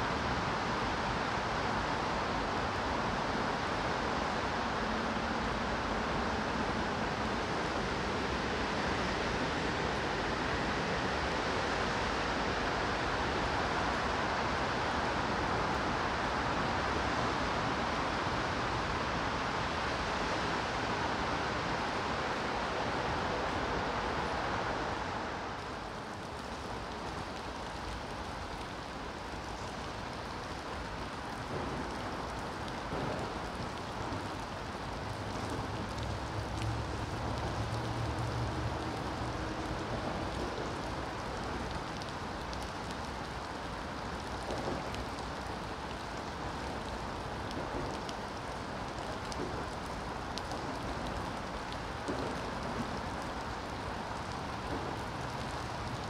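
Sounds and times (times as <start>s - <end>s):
rain falling on wet paving: 0.0s - 56.0s.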